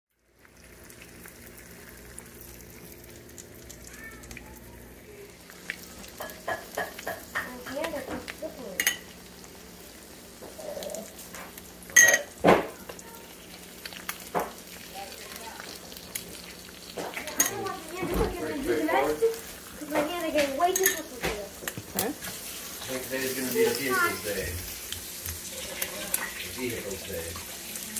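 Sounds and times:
eggs sizzling in a pan: 0.1s - 27.9s
dishes and cutlery clinking: 8.8s - 9.1s, 11.4s - 12.8s, 16.9s - 18.4s, 19.9s - 22.4s.

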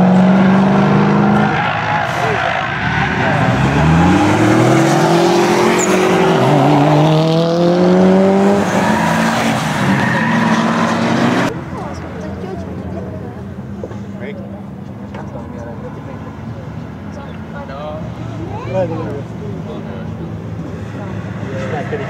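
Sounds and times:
car engine revving: 0.0s - 13.2s.

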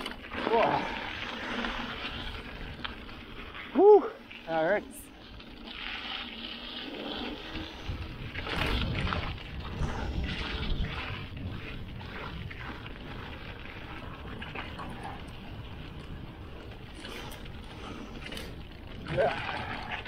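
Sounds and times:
bike rattling and knocking: 0.0s - 20.0s
bike tyres rumbling on dirt: 0.0s - 20.0s.

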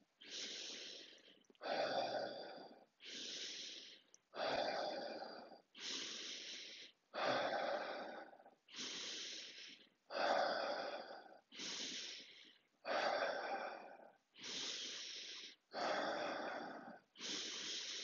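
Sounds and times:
man breathing forcefully: 0.0s - 18.0s.

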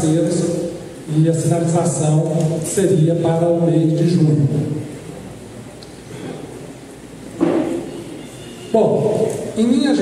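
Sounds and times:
low rumbling hall noise: 0.0s - 10.0s.

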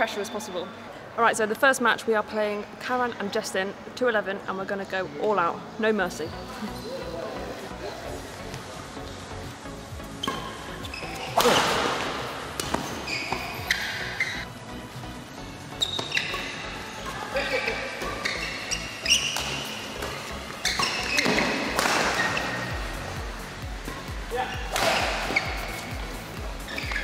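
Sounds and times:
court shoes squeaking: 4.9s - 27.0s
rackets striking shuttlecock: 10.2s - 13.9s, 19.0s - 22.5s, 24.7s - 25.9s.

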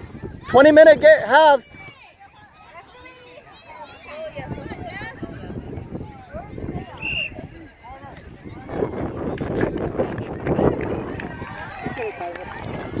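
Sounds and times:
microphone rumble: 8.2s - 13.0s.

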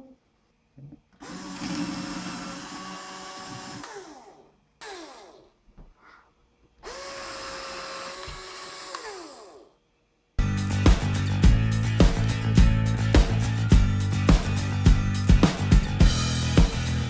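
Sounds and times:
power drill boring into pumpkin: 1.2s - 5.4s, 6.8s - 9.7s
music: 10.4s - 17.0s.

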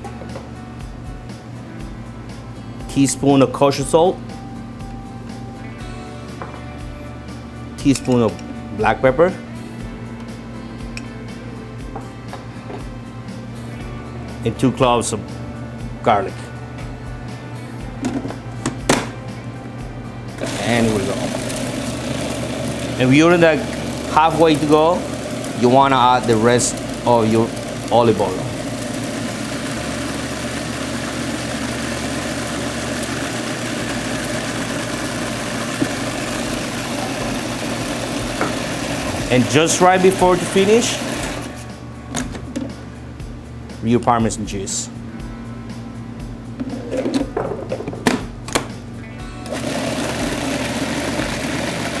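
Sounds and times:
background music: 0.0s - 52.0s
food processor motor running: 20.4s - 41.6s, 49.4s - 52.0s.

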